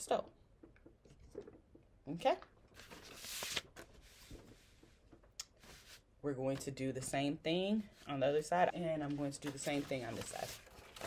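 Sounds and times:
paper rustling under hands: 0:02.7 - 0:05.0, 0:08.9 - 0:11.0.

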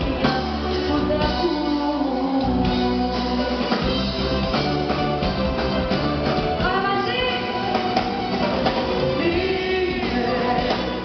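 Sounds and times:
drum kit: 0:00.0 - 0:11.0
guitar: 0:00.0 - 0:11.0.

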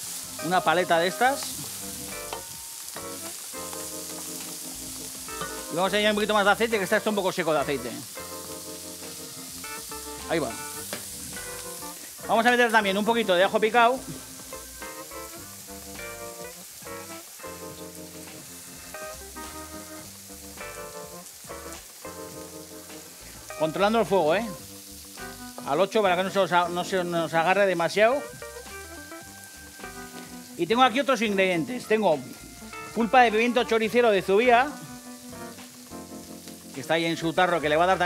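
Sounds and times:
music: 0:00.0 - 0:38.0
onion sizzling in oil: 0:00.0 - 0:38.0.

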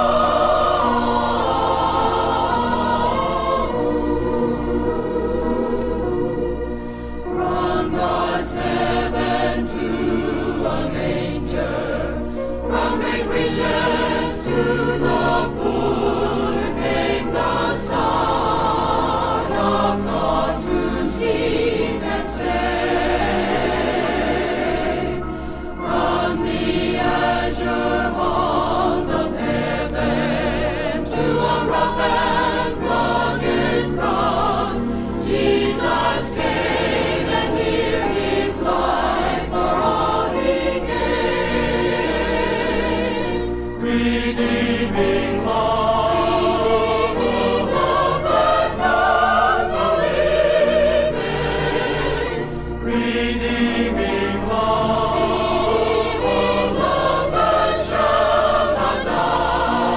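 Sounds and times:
choir singing gospel: 0:00.0 - 0:59.9.

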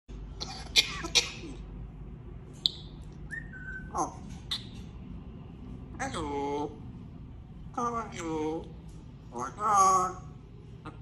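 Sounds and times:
parrot whistling: 0:02.6 - 0:04.8.

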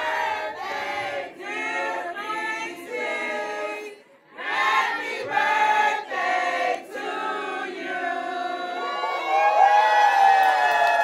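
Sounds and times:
group singing in harmony: 0:00.0 - 0:09.2.

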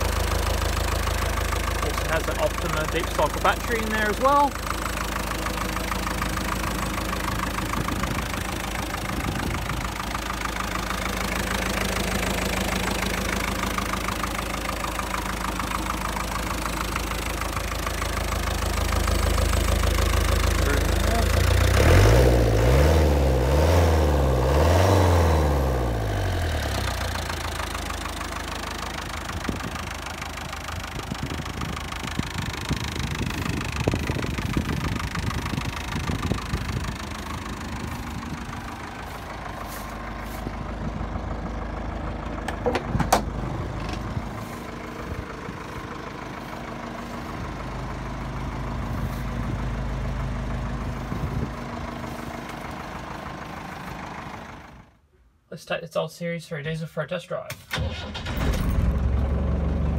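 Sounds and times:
diesel engine idling and revving: 0:00.0 - 0:55.4, 0:57.6 - 0:59.9.

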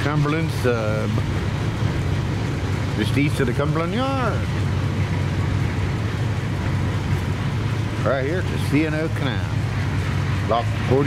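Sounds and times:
train rumbling on track: 0:00.0 - 0:11.0.

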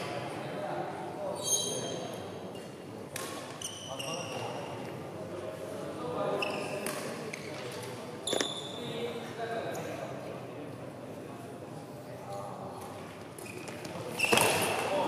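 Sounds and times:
murmur of voices: 0:00.0 - 0:15.0
shoes squeaking on court: 0:03.4 - 0:04.7, 0:06.4 - 0:08.8, 0:13.4 - 0:14.9.

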